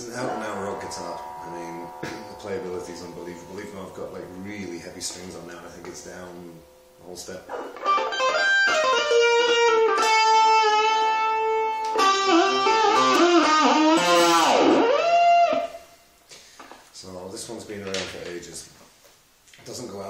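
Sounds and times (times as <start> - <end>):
electric guitar lead with bent notes: 0.0 - 5.9, 6.5 - 15.8
tremolo-arm pitch dive: 0.0 - 11.2.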